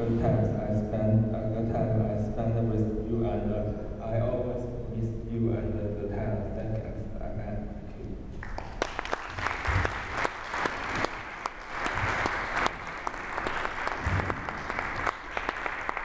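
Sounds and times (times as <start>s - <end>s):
audience applauding: 8.4s - 16.0s.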